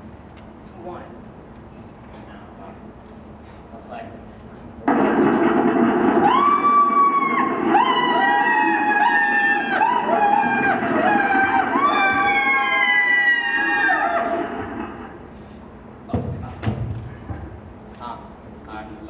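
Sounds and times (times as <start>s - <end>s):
fire engine siren: 6.0s - 15.0s.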